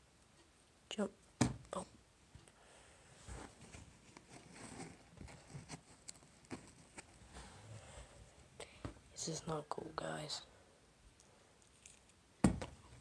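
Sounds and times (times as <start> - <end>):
soft rustles: 3.1 - 9.1.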